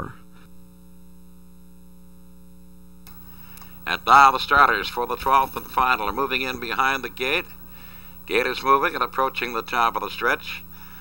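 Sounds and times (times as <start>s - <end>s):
electrical mains hum: 0.0s - 11.0s
faint tape hiss: 0.0s - 11.0s.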